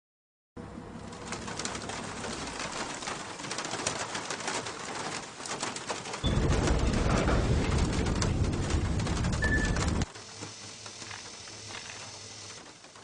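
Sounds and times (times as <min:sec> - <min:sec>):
heavy rain falling: 0:00.9 - 0:13.0.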